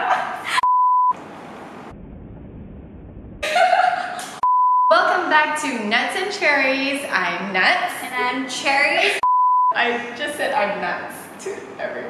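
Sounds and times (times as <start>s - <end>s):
high test-tone beep: 4.4s - 4.9s, 9.2s - 9.8s
low rumbling hiss: 9.8s - 12.0s.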